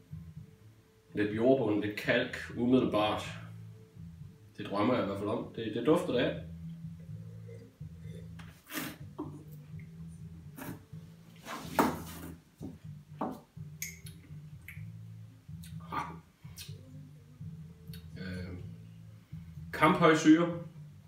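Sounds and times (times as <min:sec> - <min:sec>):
man slurping wine: 0:08.2 - 0:09.0.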